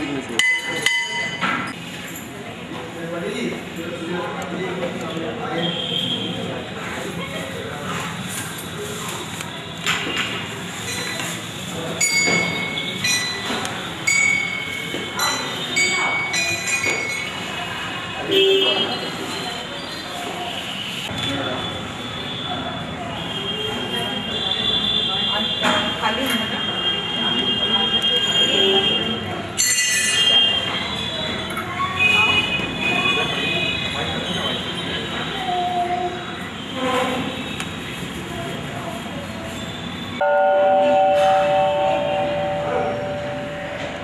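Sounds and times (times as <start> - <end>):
murmur of voices: 0.0 - 44.0
metal bells ringing: 12.0 - 17.3, 29.6 - 30.5
metal temple bell ringing: 29.6 - 30.5, 40.2 - 44.0.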